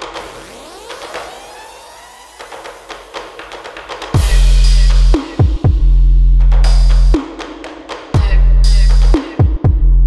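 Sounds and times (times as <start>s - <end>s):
electronic music sweep effects: 0.0s - 7.1s.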